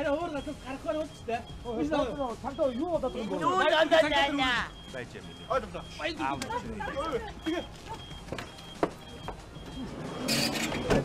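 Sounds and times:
faint high beep: 0.0 - 11.0.

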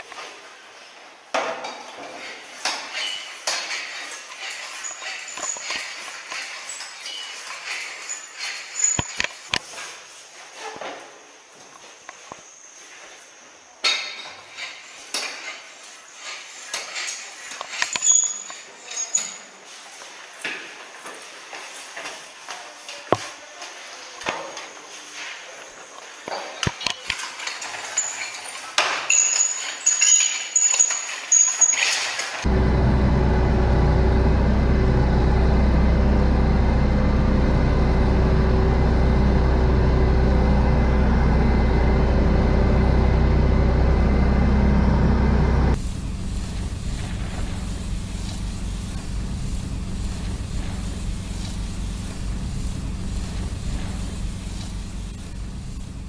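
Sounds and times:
truck engine running: 32.4 - 56.0.

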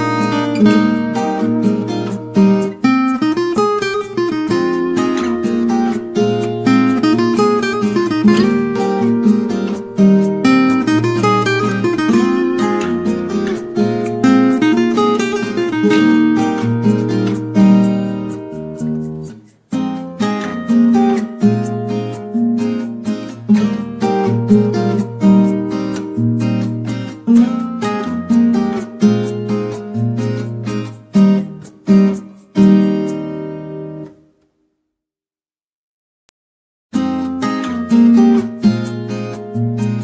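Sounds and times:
acoustic guitar music: 0.0 - 34.8, 36.9 - 40.0.

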